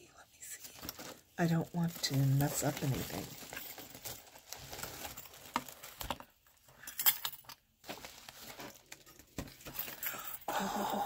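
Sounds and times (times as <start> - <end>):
light clicks and small clinks: 6.6 - 7.6.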